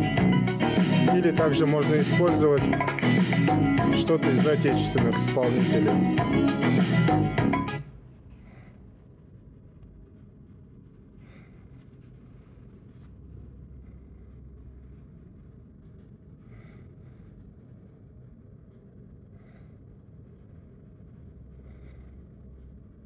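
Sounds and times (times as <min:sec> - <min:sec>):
steady low hum: 0:00.0 - 0:23.0
gloved fingers rubbing smartphone: 0:08.4 - 0:23.0.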